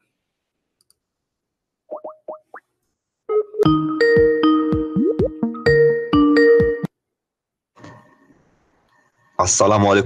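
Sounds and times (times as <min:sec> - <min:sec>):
rising plop sound effects: 0:05.0 - 0:05.5.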